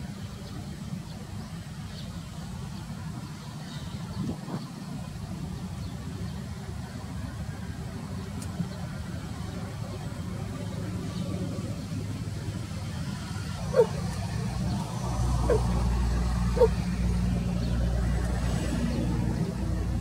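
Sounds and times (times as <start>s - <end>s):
low engine-like rumble: 0.0s - 20.0s.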